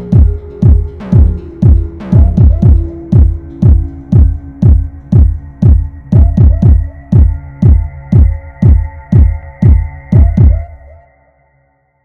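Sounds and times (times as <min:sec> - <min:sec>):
electronic kick drum: 0:00.0 - 0:10.8
sustained synth tones: 0:00.0 - 0:10.8.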